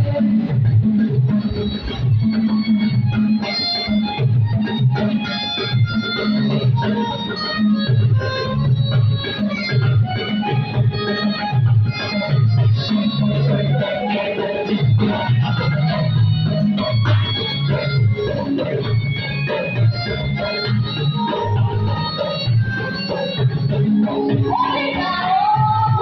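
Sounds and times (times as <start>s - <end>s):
drum beats: 0.0s - 26.0s
electronic organ chords: 0.0s - 26.0s.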